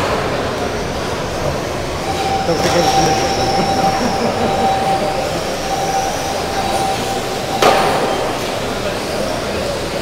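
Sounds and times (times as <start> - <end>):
radio-controlled cars racing: 0.5 - 5.5
steady high tone: 2.0 - 9.3.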